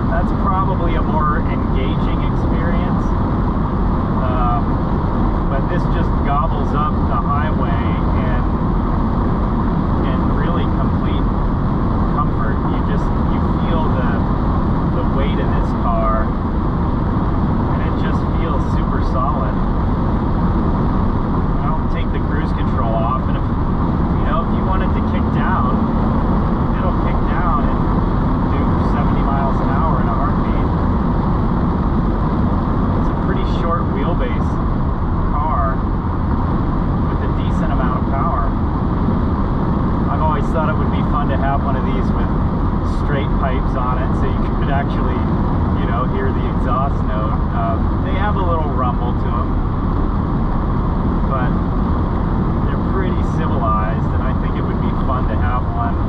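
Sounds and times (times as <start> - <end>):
car engine rumble: 0.0 - 56.0
tyre and road noise: 0.0 - 56.0.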